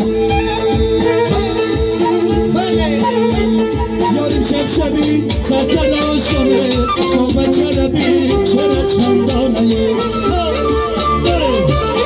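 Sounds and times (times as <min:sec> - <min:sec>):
drum beat: 0:00.0 - 0:12.0
keyboard: 0:00.0 - 0:12.0
live band music: 0:00.0 - 0:12.0
person singing: 0:00.5 - 0:12.0.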